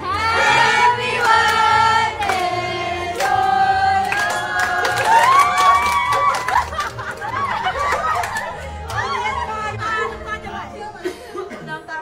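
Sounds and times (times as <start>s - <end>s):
young voices singing together: 0.0s - 5.8s
hand clapping: 4.0s - 9.1s.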